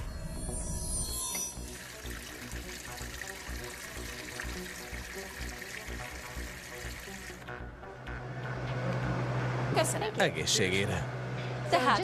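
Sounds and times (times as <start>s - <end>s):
background music: 0.0s - 12.0s
beer pouring into a glass: 1.6s - 7.4s.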